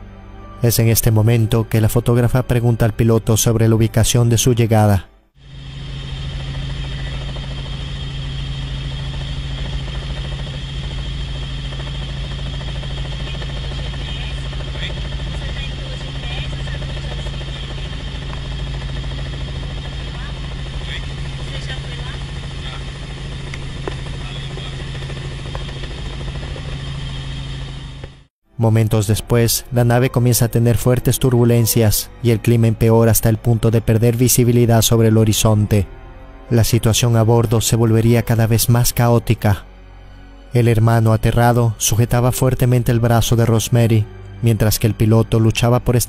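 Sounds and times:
helicopter engine and rotor drone: 0:05.4 - 0:28.3, 0:30.0 - 0:46.0.

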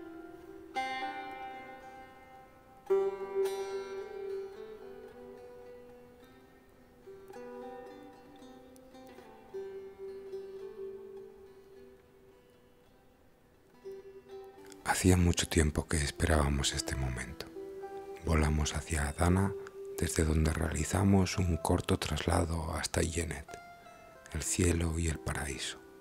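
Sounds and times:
plucked string instrument: 0:00.0 - 0:26.0.

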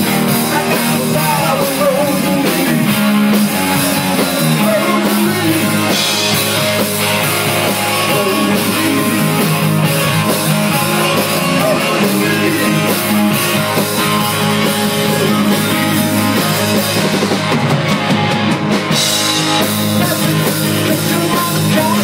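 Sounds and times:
drum kit: 0:00.0 - 0:22.0
electric bass: 0:00.0 - 0:22.0
electric guitars: 0:00.0 - 0:22.0.

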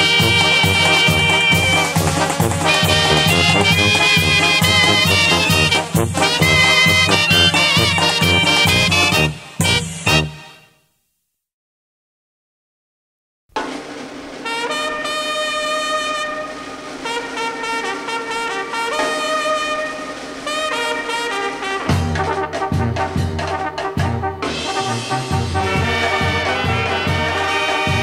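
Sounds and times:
bass line: 0:00.0 - 0:10.4
drums steady beat: 0:00.0 - 0:10.5, 0:13.5 - 0:28.0
trumpets and trombones melody: 0:00.0 - 0:10.8, 0:14.3 - 0:28.0.

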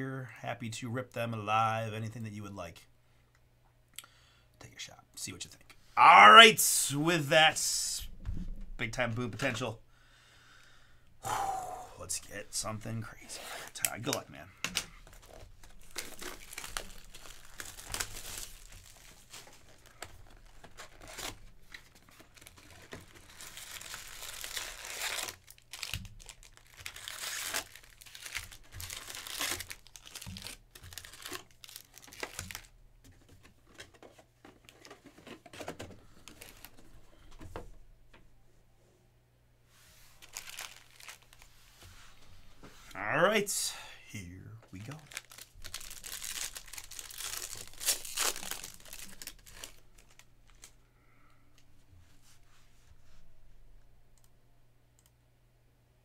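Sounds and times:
card packs rustling: 0:12.6 - 0:37.6, 0:40.1 - 0:41.5, 0:44.8 - 0:50.8
plastic wrap crinkling and tearing: 0:15.0 - 0:32.8, 0:33.6 - 0:37.0, 0:40.1 - 0:41.5, 0:44.8 - 0:50.8.

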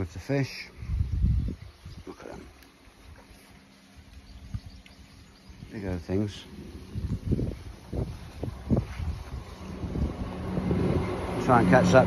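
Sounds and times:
wind buffeting microphone: 0:00.7 - 0:03.2, 0:04.2 - 0:12.0.

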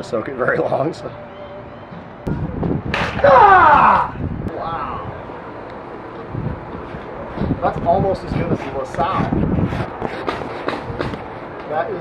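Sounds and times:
spear blade striking target: 0:02.9 - 0:04.0.

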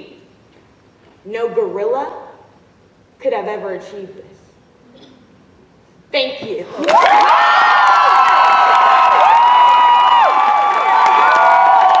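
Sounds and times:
audience cheering and whooping: 0:06.7 - 0:12.0
people clapping: 0:06.7 - 0:12.0.

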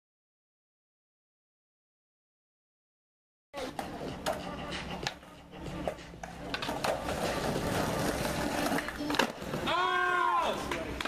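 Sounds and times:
skateboard clack: 0:03.6 - 0:09.7, 0:10.6 - 0:11.0
skateboard wheels rolling on concrete: 0:03.6 - 0:11.0.

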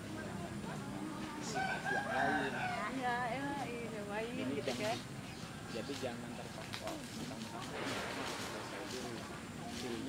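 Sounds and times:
faint background voices: 0:00.0 - 0:10.0
rooster crowing: 0:01.5 - 0:03.0.

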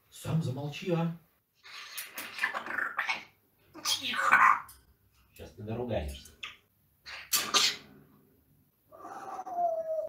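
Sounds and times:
parrot whining call: 0:08.9 - 0:10.0.

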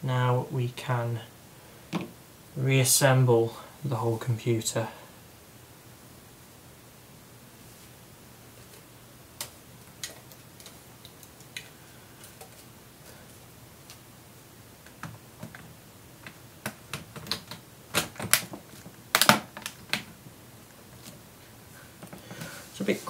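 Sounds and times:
plastic laptop case clicks: 0:16.3 - 0:20.1.

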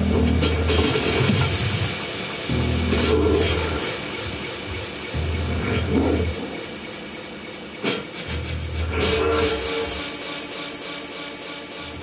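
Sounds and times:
electronic noise wash: 0:00.0 - 0:12.0
mid-range synth sound: 0:00.0 - 0:12.0
low bass drone: 0:02.4 - 0:07.4, 0:08.2 - 0:10.8.

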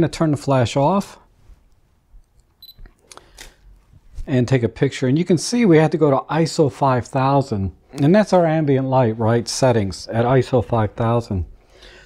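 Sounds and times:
short high beep: 0:02.6 - 0:02.8.

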